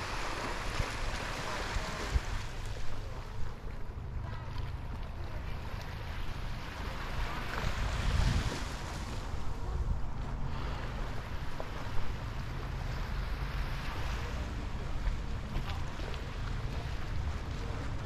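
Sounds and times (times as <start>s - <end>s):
small waves washing on shore: 0.0s - 18.0s
wind buffeting microphone: 6.4s - 12.7s.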